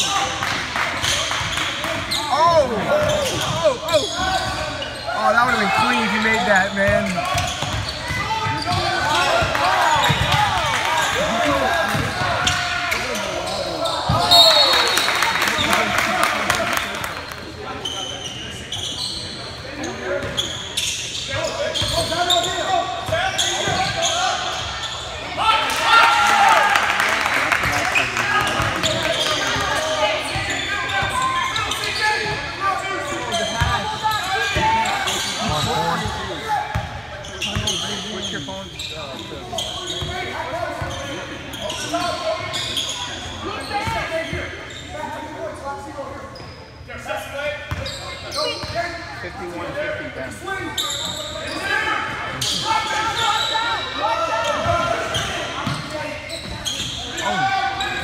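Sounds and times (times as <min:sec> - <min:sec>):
voices of players and spectators: 0:00.0 - 0:58.0
basketball bouncing on wooden court: 0:06.9 - 0:08.9.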